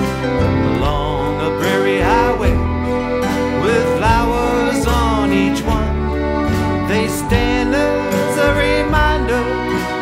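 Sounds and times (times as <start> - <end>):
acoustic guitar: 0.0 - 10.0
fiddle melody: 0.0 - 10.0
sustained bass: 0.0 - 10.0.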